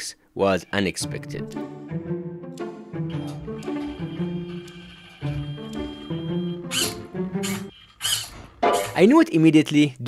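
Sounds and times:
background music: 0.6 - 7.7
toy water gun hissing: 6.7 - 8.4.

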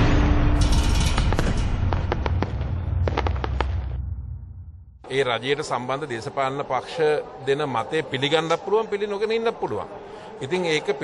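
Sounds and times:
low rumble: 0.0 - 5.0
sharp crackles and pops: 0.6 - 4.1.

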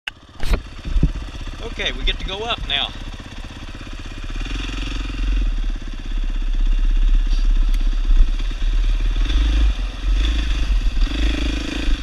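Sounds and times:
dirt bike engine idling: 0.1 - 12.0.

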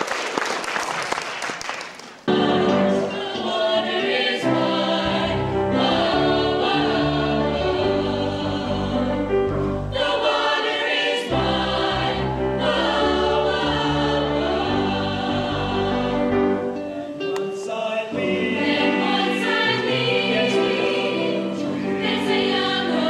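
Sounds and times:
choir singing: 2.3 - 23.0.

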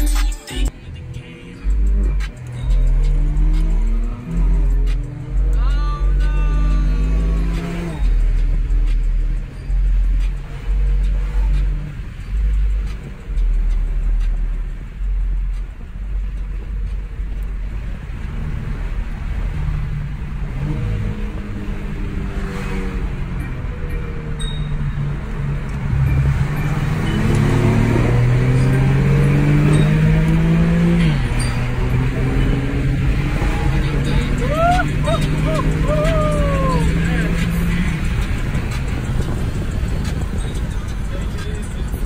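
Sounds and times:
hip-hop music with heavy bass: 0.0 - 17.2, 25.8 - 42.0
car engine accelerating hard: 0.8 - 42.0.

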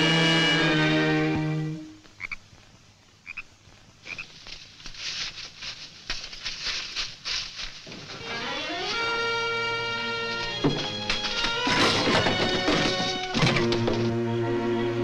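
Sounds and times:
film score music: 0.0 - 2.0, 8.0 - 15.0
frogs croaking: 0.0 - 5.5.

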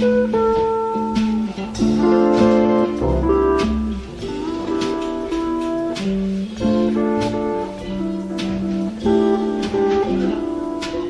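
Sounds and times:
drums: 0.0 - 11.0
lap steel guitar sliding: 0.0 - 11.0
ukulele: 0.0 - 11.0
washtub bass: 0.0 - 11.0.

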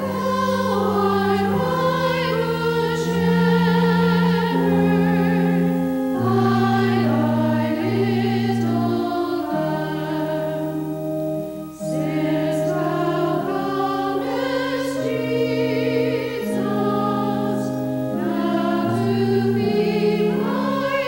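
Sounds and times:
choir singing slow chords: 0.0 - 21.0.

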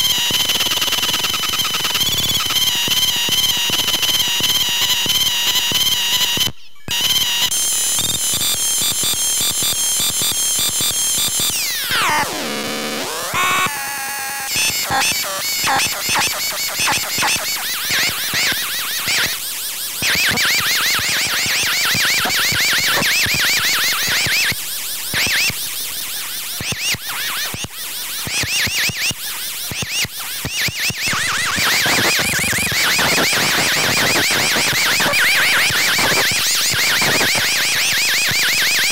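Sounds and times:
harsh electronic stuttering pulses: 0.0 - 38.9.

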